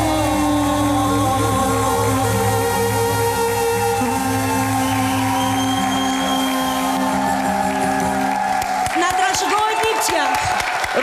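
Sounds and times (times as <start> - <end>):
audience cheering and clapping: 2.7 - 11.0.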